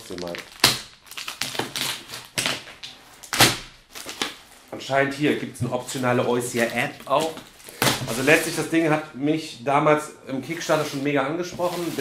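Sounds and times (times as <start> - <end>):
loud plastic rips: 0.0 - 4.5, 6.4 - 8.6, 11.6 - 12.0
shrink-wrap crinkling and tearing: 0.0 - 5.4, 6.0 - 8.6.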